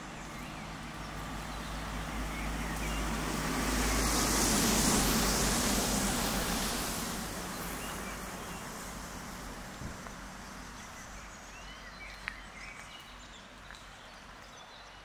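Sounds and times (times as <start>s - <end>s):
vehicle passing by: 0.0s - 11.8s.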